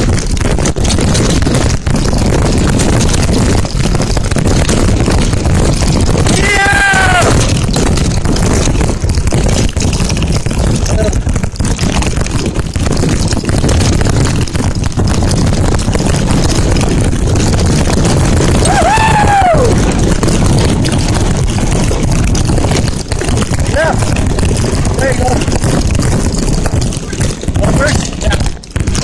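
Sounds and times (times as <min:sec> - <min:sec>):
bike rattling: 0:00.0 - 0:29.0
bike tyres rolling on gravel: 0:00.0 - 0:29.0
wind buffeting microphone: 0:16.2 - 0:26.8.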